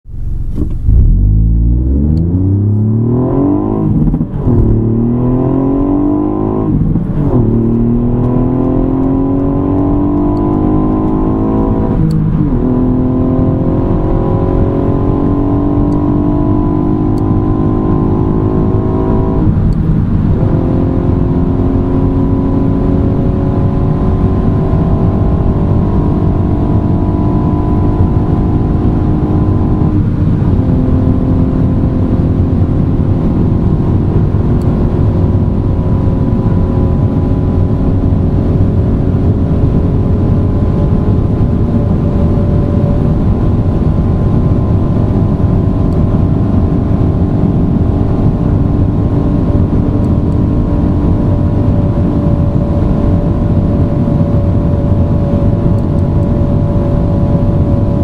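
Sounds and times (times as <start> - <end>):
car engine at full throttle: 0.0 - 58.0
road and wind noise: 0.0 - 58.0.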